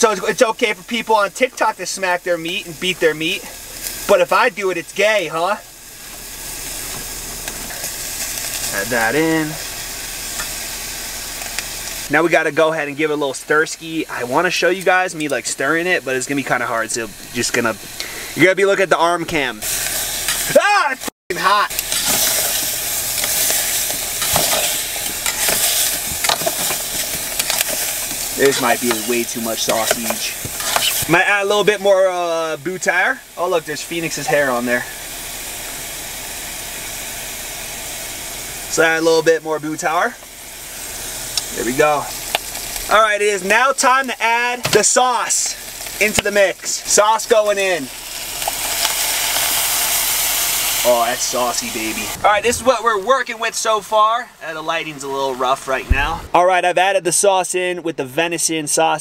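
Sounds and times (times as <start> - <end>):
sausage and onions sizzling: 0.0 - 57.7.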